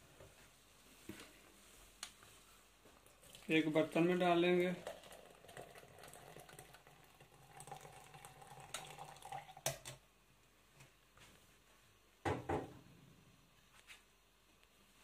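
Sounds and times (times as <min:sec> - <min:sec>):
tea trickling through strainer: 0:03.0 - 0:10.0.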